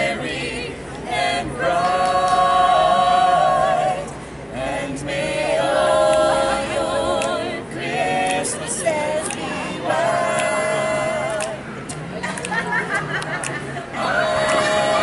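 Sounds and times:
choir singing a cappella: 0.0 - 11.7, 13.9 - 15.0.

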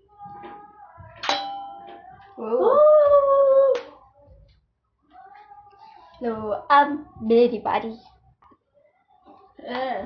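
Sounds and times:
metallic ring of tumbler: 1.2 - 2.5.

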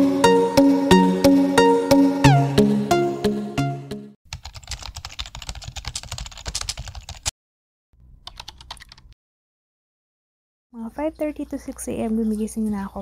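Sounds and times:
rapid keyboard typing: 4.3 - 7.3, 8.2 - 9.2.

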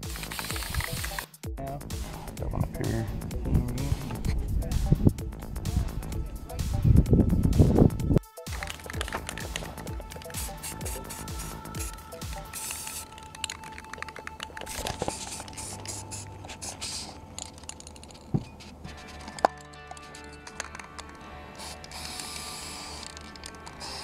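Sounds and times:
sharp clicks: 0.0 - 1.4, 8.4 - 16.4, 19.2 - 24.0
spray paint can hissing: 0.0 - 1.4, 8.4 - 19.3, 20.2 - 24.0
background music: 0.0 - 24.0.

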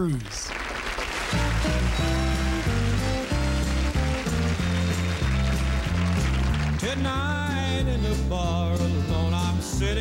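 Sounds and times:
country band playing: 1.3 - 10.0.

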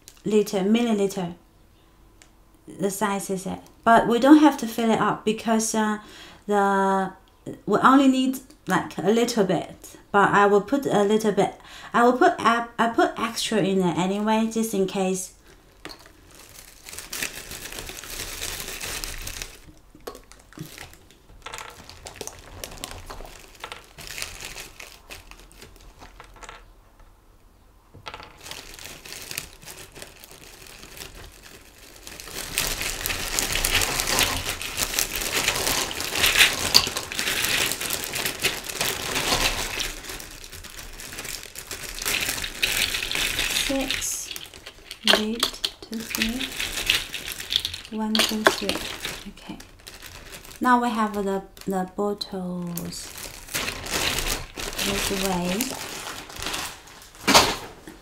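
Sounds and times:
plastic bag crinkling: 0.0 - 0.3, 15.0 - 26.7, 28.0 - 58.0.

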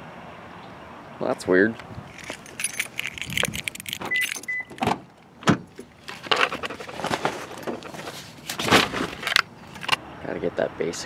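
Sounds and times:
car keys jangling: 2.1 - 6.8
short high beeps: 4.1 - 4.7.

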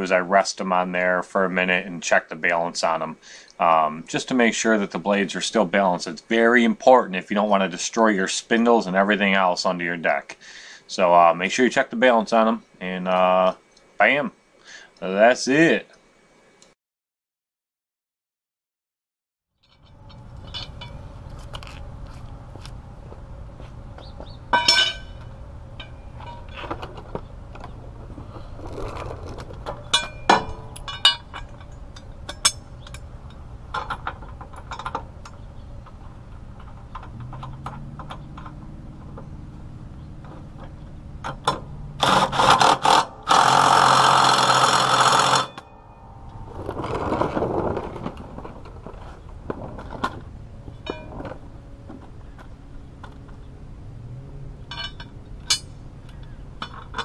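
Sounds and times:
tools and metal clinking: 19.6 - 22.2, 24.5 - 27.8, 28.7 - 39.3, 40.2 - 49.0, 49.6 - 53.4, 54.6 - 57.0
impact wrench hammering on bolt: 41.4 - 45.7.

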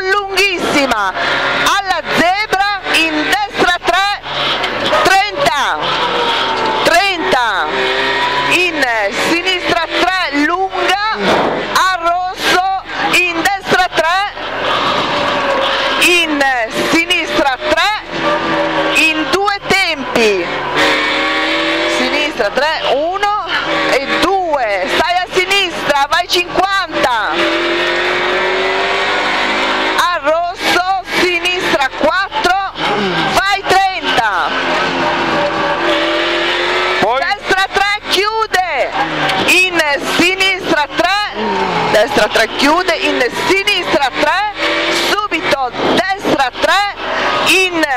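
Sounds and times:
rally car engine revving: 0.0 - 47.9.

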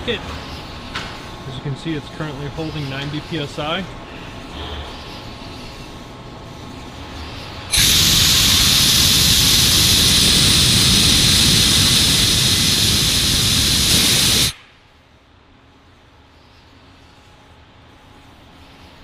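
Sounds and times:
pressurized air hissing: 7.7 - 14.6.

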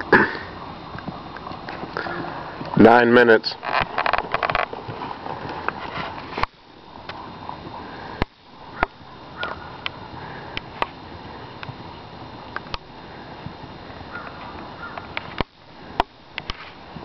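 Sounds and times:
hooves and tack clicking: 0.0 - 17.0
outdoor background noise: 0.0 - 17.0.

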